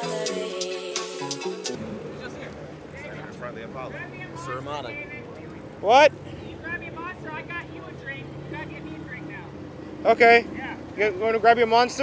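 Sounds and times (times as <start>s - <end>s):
car engine idling: 1.7s - 12.0s
people chattering: 1.8s - 12.0s.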